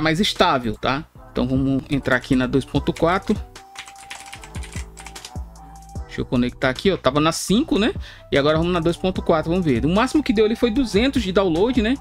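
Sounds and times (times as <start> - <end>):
background music: 0.0 - 12.0
computer keyboard typing: 2.9 - 5.4.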